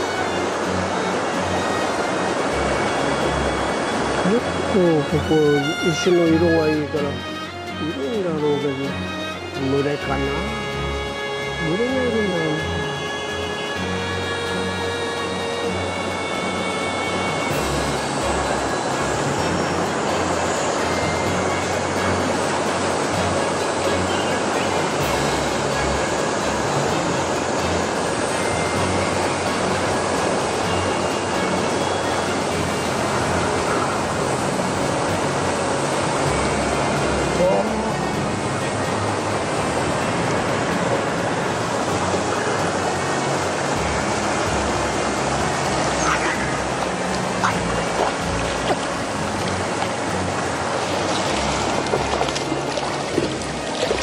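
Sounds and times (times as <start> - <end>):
river rushing over stones: 0.0 - 54.0.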